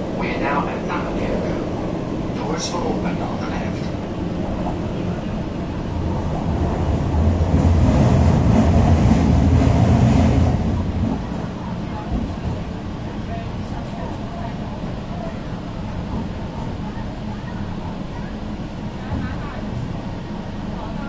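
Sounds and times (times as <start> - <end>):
train carriage rumble: 0.0 - 21.0.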